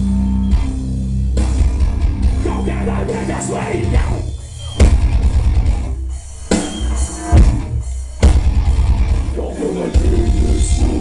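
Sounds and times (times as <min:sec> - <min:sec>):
heavy rock band playing live: 0:00.0 - 0:11.0.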